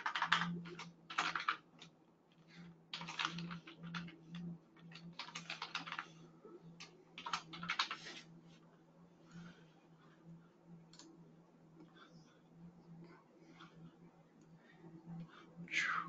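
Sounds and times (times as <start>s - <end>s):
typing on a computer keyboard: 0.0s - 6.2s, 6.8s - 8.0s.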